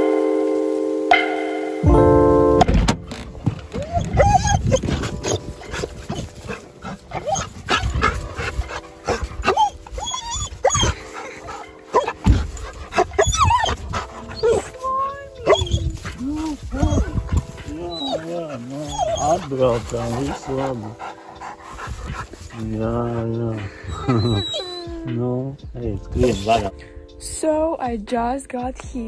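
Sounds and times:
faint music: 0.0 - 29.0
dog whining and yelping: 3.7 - 25.1, 26.2 - 26.7
person talking high-pitched: 14.4 - 17.2.

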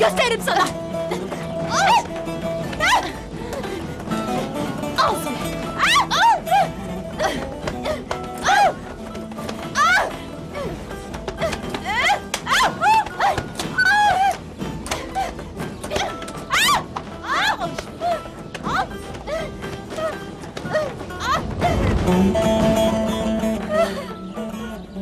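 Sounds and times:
background music: 0.0 - 25.0
women yelping and shrieking: 1.6 - 3.3, 5.0 - 7.4, 8.4 - 8.9, 9.7 - 21.9.

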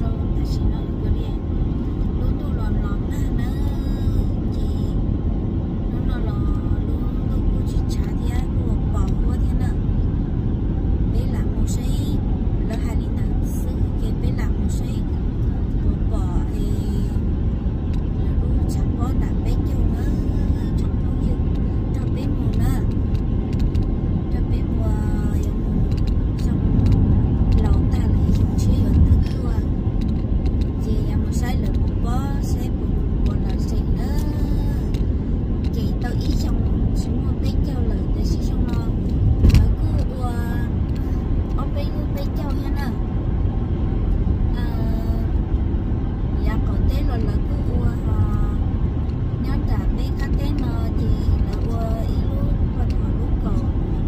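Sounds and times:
car road and engine rumble: 0.0 - 54.0.

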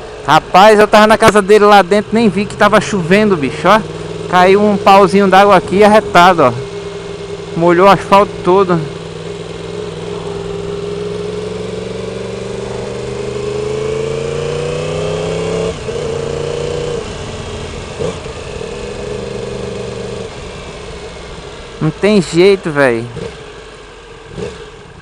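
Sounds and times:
motorcycle engine revving: 0.0 - 25.0.

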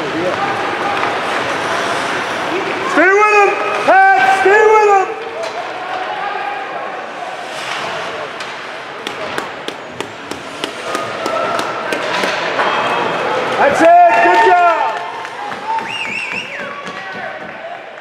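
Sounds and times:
crowd murmur: 0.0 - 3.8
sticks and puck clacking: 0.1 - 4.5, 7.7 - 13.8.

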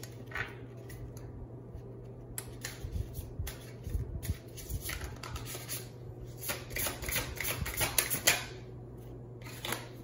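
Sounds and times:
cards being shuffled by hand: 0.0 - 8.1.

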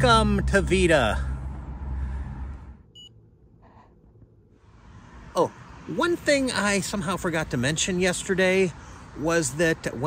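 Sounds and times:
short electronic beep: 2.9 - 3.2.

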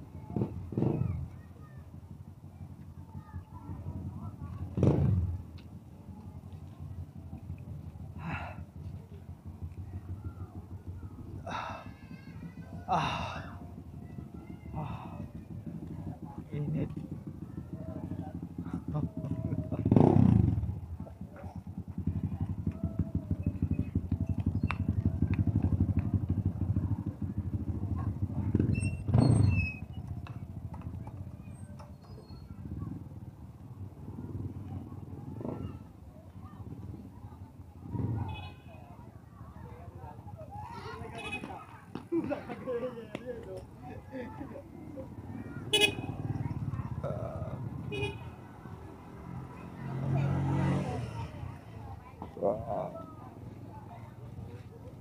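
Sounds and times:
faint street background: 0.0 - 55.0
motorcycles passing by: 0.0 - 55.0
small motorcycle engine running: 14.1 - 31.6, 44.2 - 53.4.

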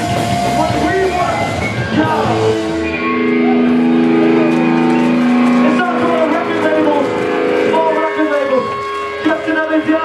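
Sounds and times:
bass guitar: 0.0 - 10.0
drums: 0.0 - 10.0
electric guitars: 0.0 - 10.0
shouted lead vocal: 0.7 - 2.6.

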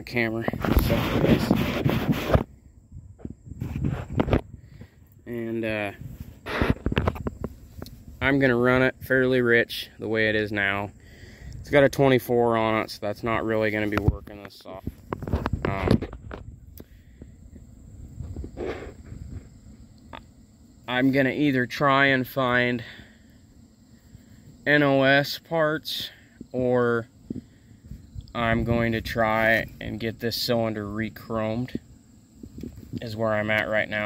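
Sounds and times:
microphone rubbing and rustling: 0.1 - 9.1, 12.8 - 20.3, 26.2 - 30.5, 31.7 - 33.1
close handling noise: 0.5 - 2.6, 3.2 - 5.2, 6.1 - 8.1, 13.6 - 17.3
soft knocks and scrapes: 3.2 - 4.4
short breath-like rush: 11.0 - 11.6.

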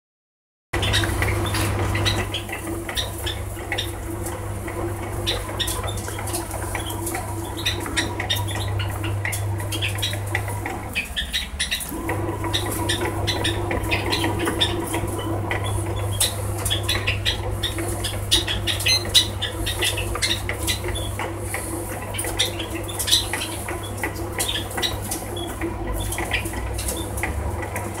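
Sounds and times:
bread maker motor hum: 0.8 - 28.0.

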